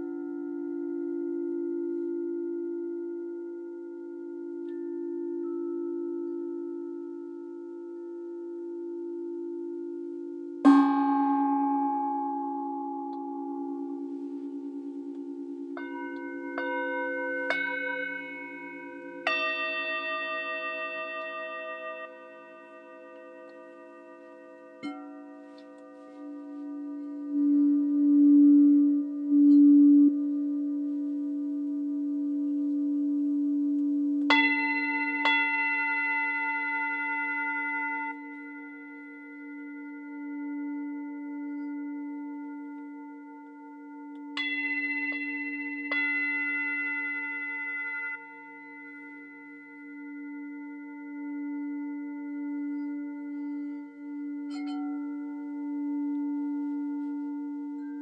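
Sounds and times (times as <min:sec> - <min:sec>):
singing bowls struck and ringing: 0:00.0 - 0:58.0.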